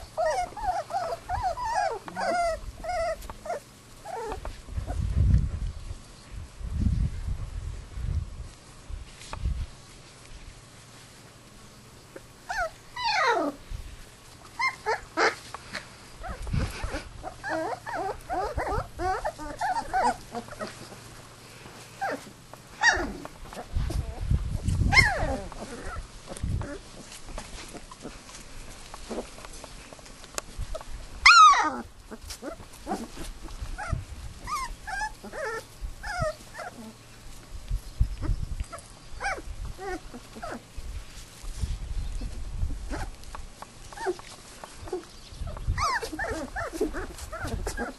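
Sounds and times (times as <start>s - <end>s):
puppies whimpering and yelping: 0.0s - 5.0s, 12.4s - 13.7s, 14.4s - 21.2s, 21.8s - 37.0s, 38.0s - 40.8s, 41.5s - 47.9s.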